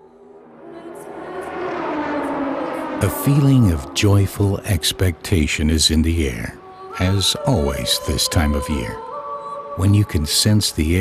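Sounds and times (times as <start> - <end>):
distant racing engines: 0.3 - 7.2.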